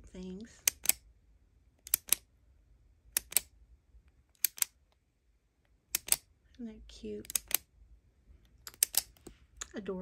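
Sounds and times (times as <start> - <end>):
ballpoint pen clicking: 0.6 - 1.0, 1.8 - 2.2, 3.1 - 3.5, 4.3 - 4.8, 5.9 - 6.3, 7.2 - 7.7, 8.6 - 9.3.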